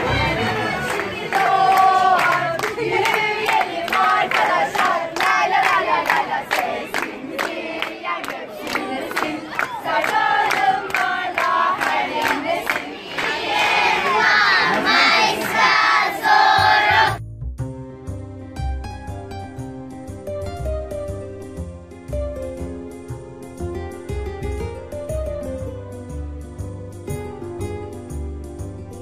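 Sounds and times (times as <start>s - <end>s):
children singing together: 0.0s - 17.2s
rhythmic clapping: 0.0s - 17.2s.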